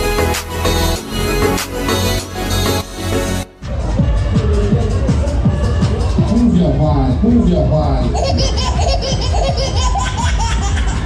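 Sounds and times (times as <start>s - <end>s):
fairground music with heavy bass: 0.0s - 11.0s
people laughing: 7.9s - 11.0s.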